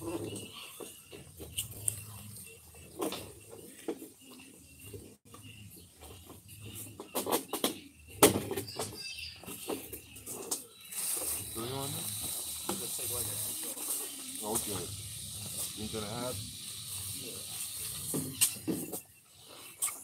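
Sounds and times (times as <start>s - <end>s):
steady hiss: 10.9s - 18.7s.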